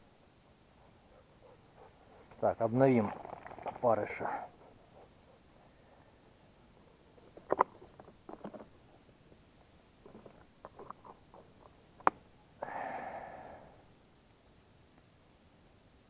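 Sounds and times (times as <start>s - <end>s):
short breathy noise: 12.6s - 13.9s.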